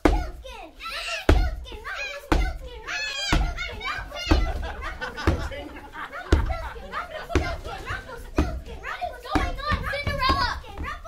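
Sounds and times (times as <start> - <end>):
children's voices: 0.0 - 11.0
footsteps on hollow wooden stage: 1.3 - 11.0.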